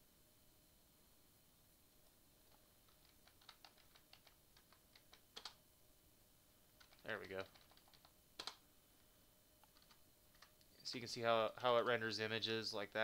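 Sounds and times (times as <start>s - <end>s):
computer keyboard typing: 2.4s - 5.6s, 6.7s - 8.6s, 9.6s - 10.6s.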